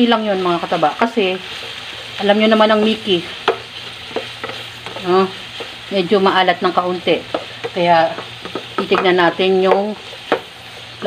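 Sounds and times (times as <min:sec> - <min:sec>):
faint sizzle of stir-frying: 0:00.0 - 0:11.0
plastic spatula knocking pan: 0:07.3 - 0:10.5.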